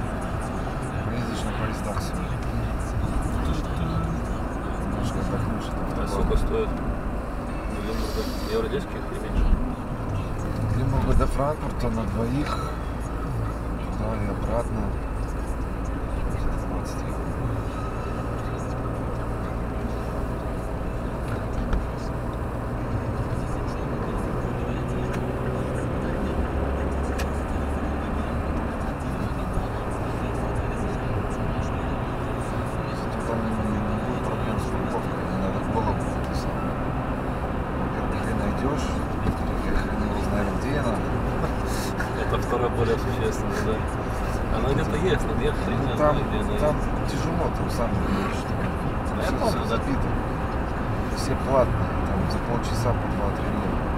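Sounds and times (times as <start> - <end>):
car engine and tyre drone: 0.0 - 53.9.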